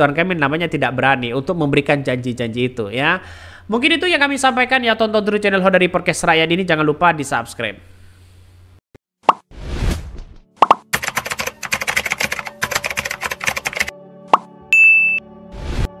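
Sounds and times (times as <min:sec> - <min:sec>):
pops: 0:10.6 - 0:11.0
keyboard typing clicks: 0:10.7 - 0:13.9
background music: 0:10.8 - 0:16.0
short high beep: 0:14.7 - 0:15.3.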